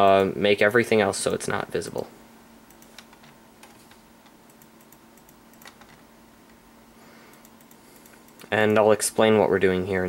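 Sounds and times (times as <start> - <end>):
faint steady hum: 0.0 - 10.0
computer mouse clicking: 2.7 - 6.6, 7.3 - 8.8.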